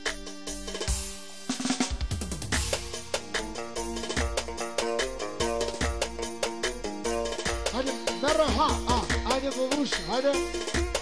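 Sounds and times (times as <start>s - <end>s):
dance music with drum kit: 0.0s - 11.0s.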